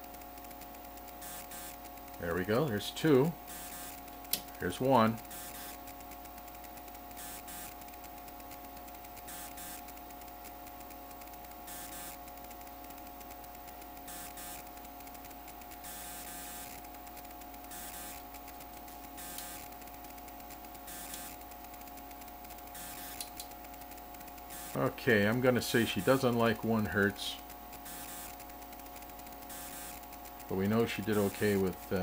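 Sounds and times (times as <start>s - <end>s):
electronic equipment hum: 0.0s - 32.0s
soft hiss: 0.0s - 32.0s.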